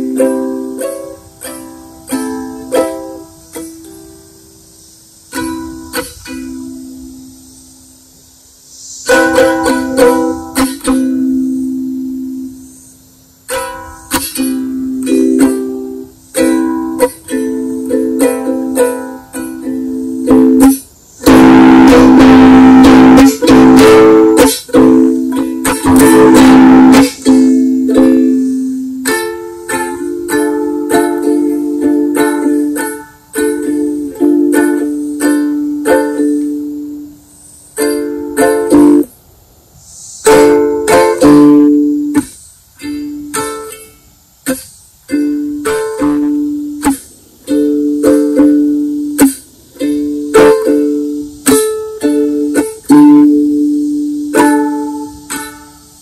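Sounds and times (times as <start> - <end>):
ukulele strumming: 0.0 - 8.0, 8.8 - 39.3, 40.2 - 56.0.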